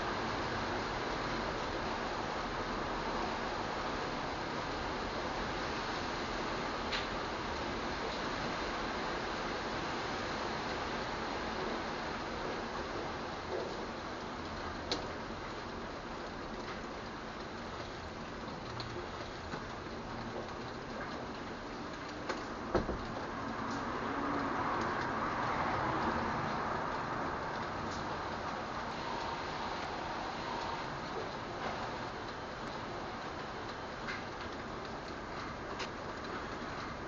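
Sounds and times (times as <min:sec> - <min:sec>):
rain falling: 0:00.0 - 0:37.0
sharp taps of raindrops: 0:06.9 - 0:08.3, 0:12.1 - 0:30.0, 0:30.6 - 0:37.0.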